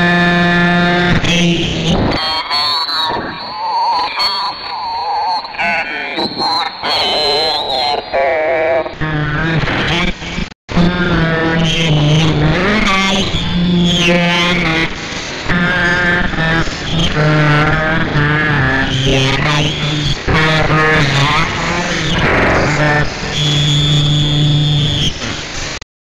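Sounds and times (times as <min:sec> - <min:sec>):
warbling electronic voice-like tones: 0:00.0 - 0:25.4.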